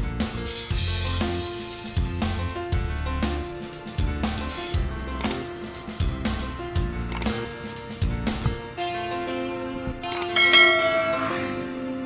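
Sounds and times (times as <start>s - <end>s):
background music: 0.0s - 12.0s
notification bell ding: 10.1s - 11.4s.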